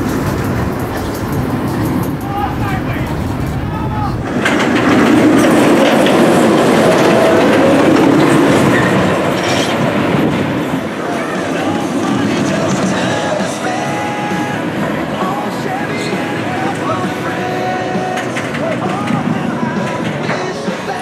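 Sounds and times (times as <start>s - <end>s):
roller coaster wheels rumbling on rail: 0.0s - 21.0s.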